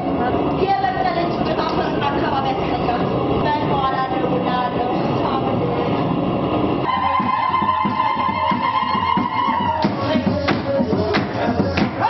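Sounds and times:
steady wash of noise: 0.0 - 12.0
voices: 0.0 - 12.0.

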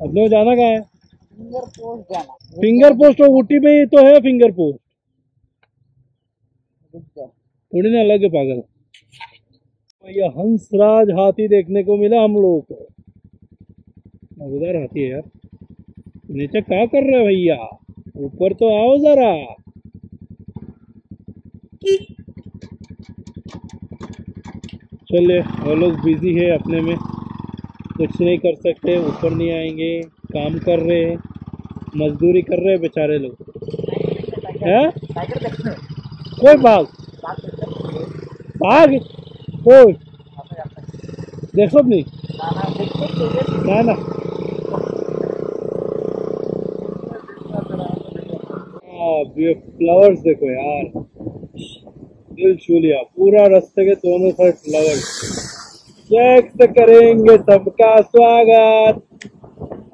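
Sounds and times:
motorcycle engine idling: 0.0 - 52.4.

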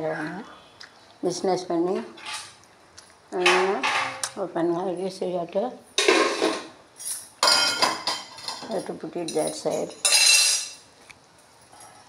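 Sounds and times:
metal utensils clattering: 6.0 - 6.7, 7.4 - 10.8.

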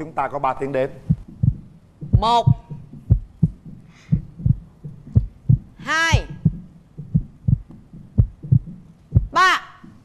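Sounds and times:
heartbeat thumps: 0.9 - 10.0.

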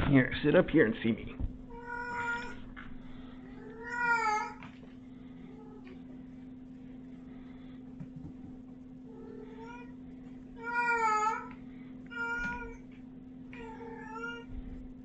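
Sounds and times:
cat meowing: 1.7 - 2.6, 3.6 - 4.6, 9.2 - 10.0, 10.6 - 11.5, 12.1 - 12.8, 13.5 - 14.5.

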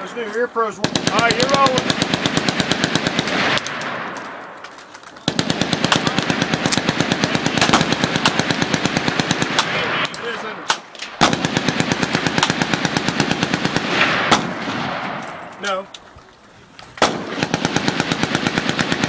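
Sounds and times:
automatic gunfire bursts: 0.8 - 4.1, 5.2 - 10.0, 10.7 - 15.1, 17.0 - 19.0
single gunshots: 5.3 - 15.8, 17.0 - 18.9.

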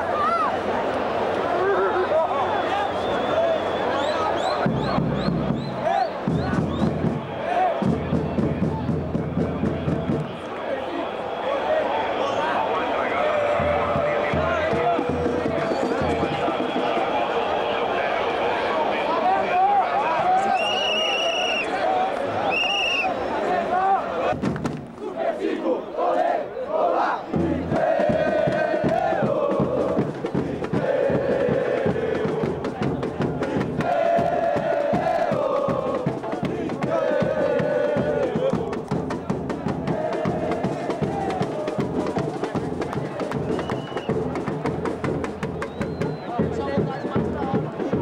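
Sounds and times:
crowd chanting in unison: 0.0 - 48.0
shrill whistle blasts: 2.5 - 6.9, 20.4 - 21.8, 22.4 - 23.2, 43.4 - 44.2, 45.6 - 46.5
steady drum beat: 4.6 - 10.4, 13.5 - 17.4, 27.4 - 48.0.

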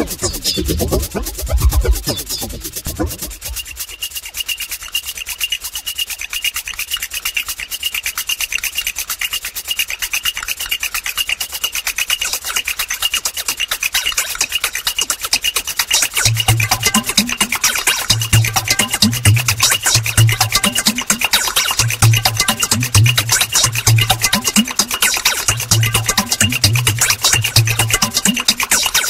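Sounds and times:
rhythmic scraping percussion: 0.0 - 29.0.

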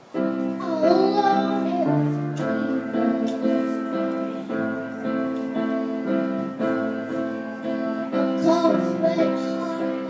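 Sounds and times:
piano chords: 0.0 - 10.0
child singing long note: 0.6 - 4.0, 7.6 - 10.0.

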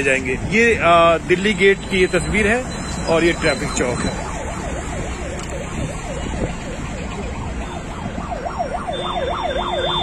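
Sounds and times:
road traffic rumble: 0.0 - 10.0
yelping siren: 2.7 - 10.0.

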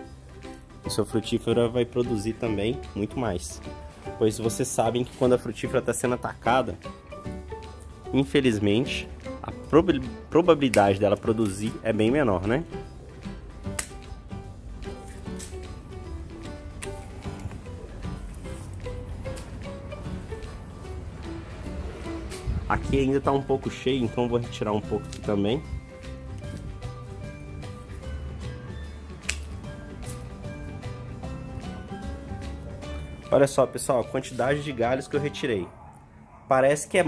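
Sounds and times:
background music: 0.0 - 37.0
pruning shears snipping branch: 13.7 - 14.2, 29.2 - 30.3
pruning shears snipping branches: 13.7 - 14.2, 14.8 - 15.8, 16.7 - 17.6, 25.0 - 25.4, 29.2 - 30.3.

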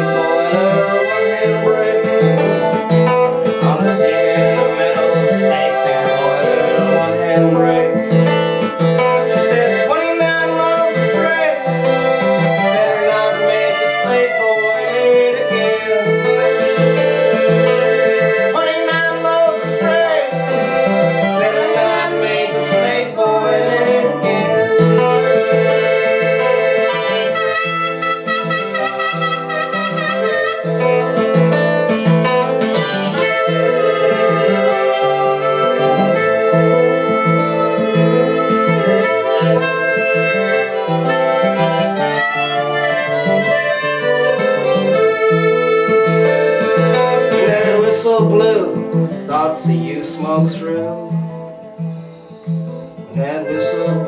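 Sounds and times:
accordion: 0.0 - 54.0
harmonica lead: 0.0 - 54.0
strummed acoustic guitar: 0.0 - 54.0.

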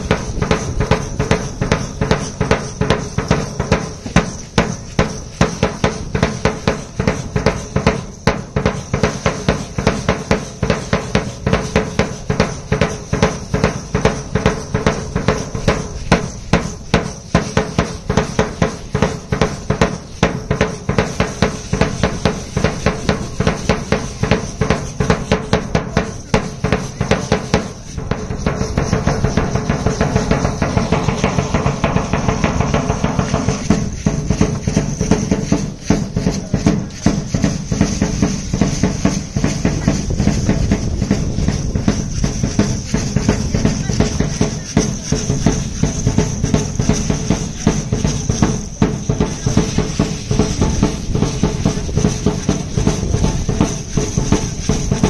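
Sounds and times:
marching drum beaten with mallet: 0.0 - 55.0.

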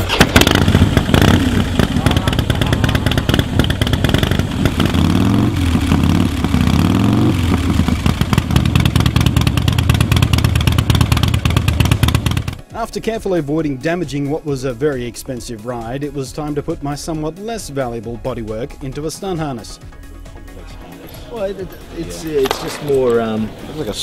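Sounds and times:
motorcycle engine revving and idling: 0.0 - 12.7.

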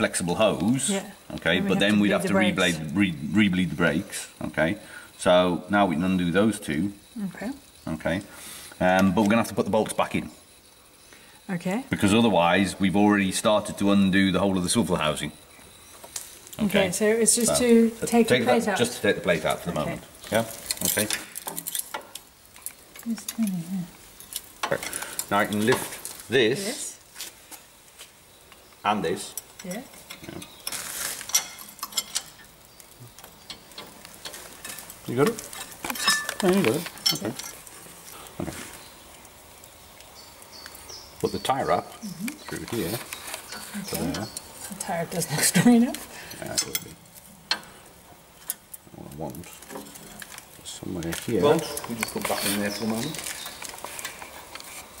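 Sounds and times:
light metallic clicks and clinks: 29.3 - 32.5, 46.3 - 47.7.

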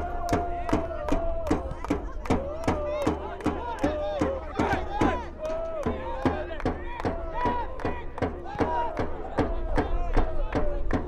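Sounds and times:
rhythmic drum bangs: 0.0 - 11.0
supporters shouting and chanting: 0.0 - 11.0.

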